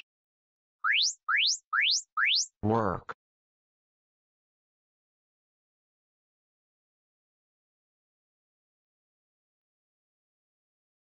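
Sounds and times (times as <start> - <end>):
rising electronic timer chirps: 0.8 - 2.6.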